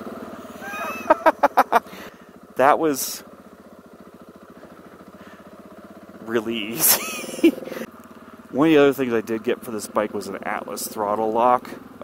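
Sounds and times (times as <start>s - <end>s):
motorcycle engine running: 0.0s - 12.0s
person laughing: 0.6s - 2.0s, 6.7s - 7.9s.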